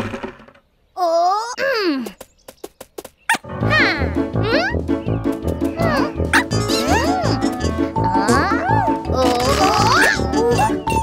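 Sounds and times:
bouncy cartoon music: 3.4s - 11.0s
squeaky cartoon vocal sounds: 5.8s - 11.0s.

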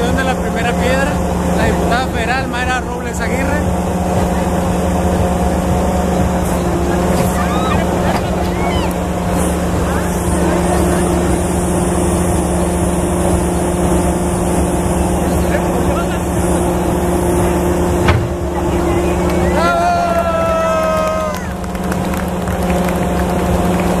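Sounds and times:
excavator diesel engine running: 0.0s - 24.0s
high falling tone: 2.1s - 22.0s
sharp knock: 18.0s - 18.4s.

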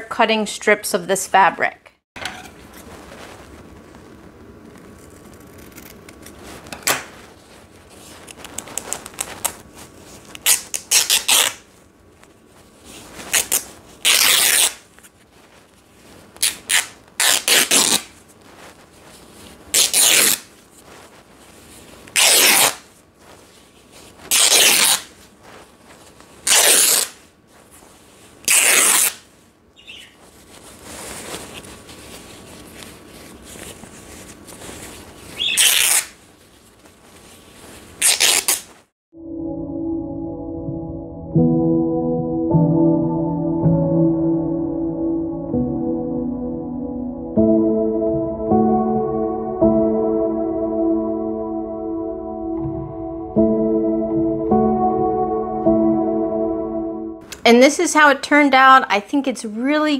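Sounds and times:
scissors cutting fabric: 4.8s - 6.4s.

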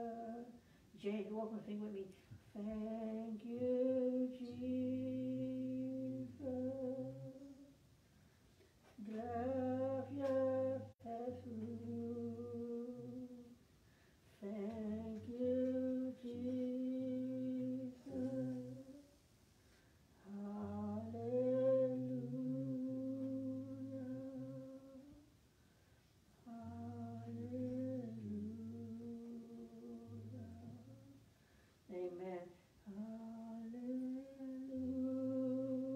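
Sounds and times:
voices singing held notes: 2.6s - 7.8s, 8.9s - 13.6s, 14.3s - 19.2s, 20.2s - 25.2s, 26.4s - 31.3s, 31.9s - 35.9s.

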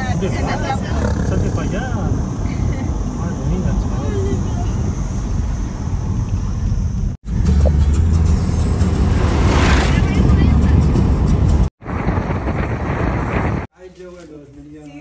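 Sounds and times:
car road and engine noise: 0.0s - 13.7s.

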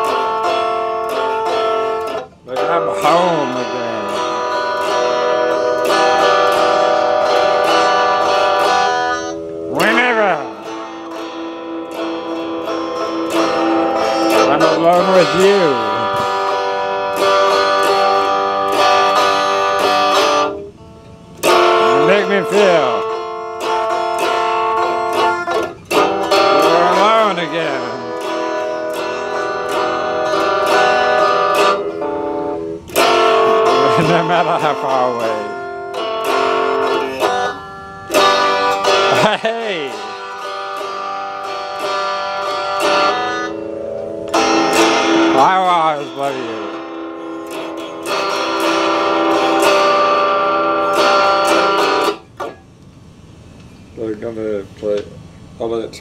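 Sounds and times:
electric guitar ringing chords: 0.0s - 54.1s.

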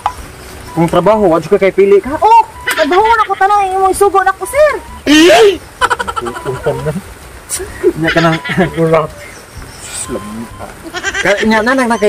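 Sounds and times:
people talking animatedly: 0.7s - 12.0s.

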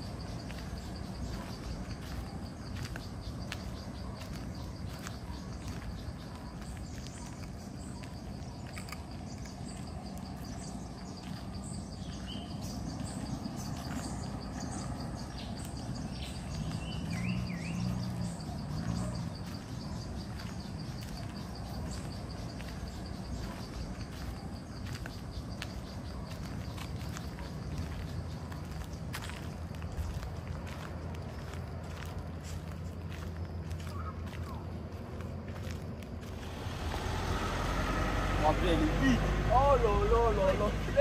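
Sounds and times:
high insect trill: 0.0s - 41.0s.

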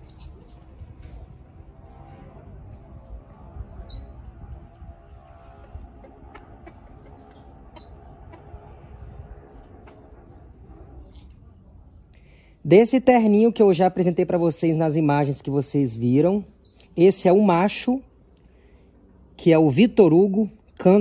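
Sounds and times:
small bird chirping: 0.0s - 12.6s, 16.2s - 19.8s
low background rumble: 0.0s - 19.6s.

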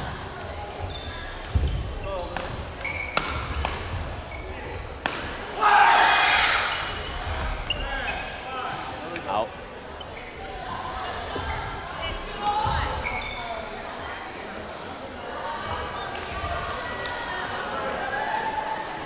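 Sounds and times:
sneakers squeaking on court: 0.8s - 5.2s, 6.6s - 8.5s, 9.9s - 10.8s, 12.6s - 13.8s.

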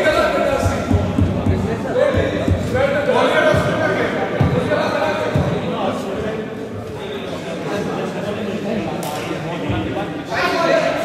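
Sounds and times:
players' voices echoing: 0.0s - 11.0s.

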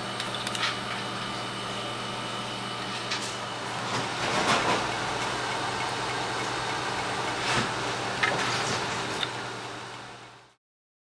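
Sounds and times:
laboratory equipment humming: 0.0s - 10.6s.

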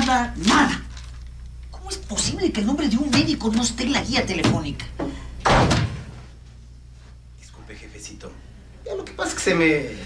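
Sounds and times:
loud slam: 5.4s - 6.3s.

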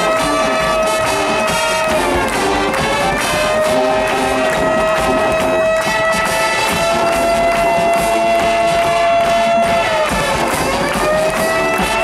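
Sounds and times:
marching band brass note: 0.0s - 12.0s.

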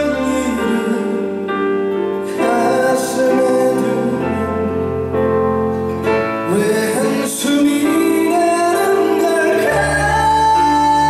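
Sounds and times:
man singing into a microphone: 0.0s - 1.6s, 2.2s - 5.2s, 6.2s - 11.0s
live band playing pop ballad: 0.0s - 11.0s.

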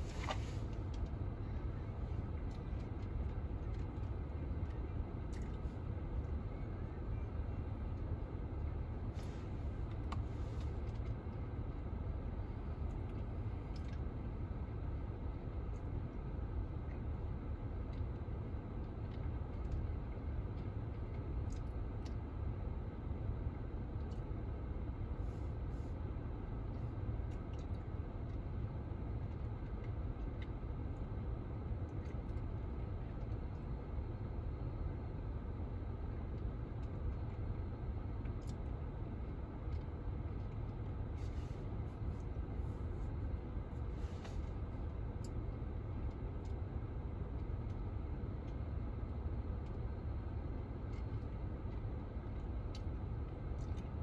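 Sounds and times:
car idling from inside cabin: 0.0s - 54.0s
faint small clicks: 18.8s - 22.2s.

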